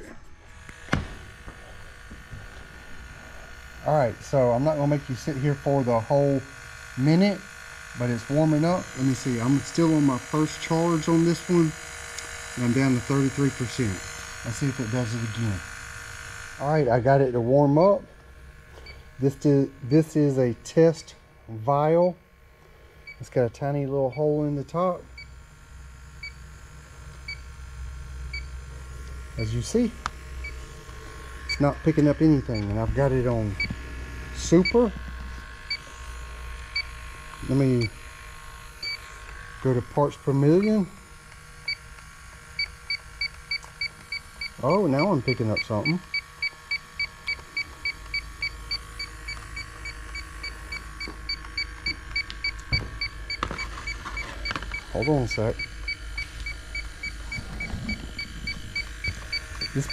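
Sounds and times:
low steady hum: 0.0 - 59.9
leak detector short beeps: 32.5 - 32.8, 42.6 - 59.9.

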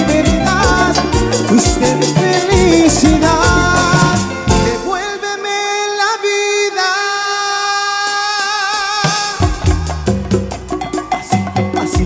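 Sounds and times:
live cumbia band music: 0.0 - 12.0.

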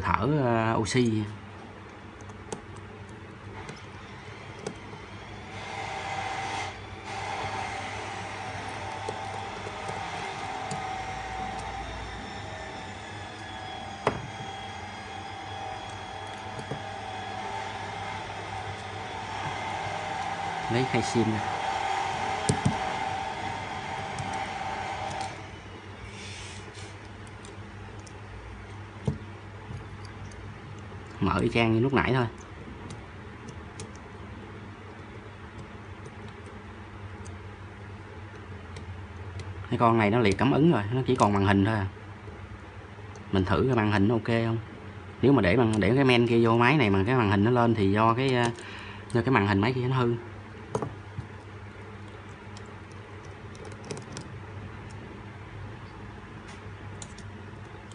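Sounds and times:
motor whirring: 3.6 - 27.1.

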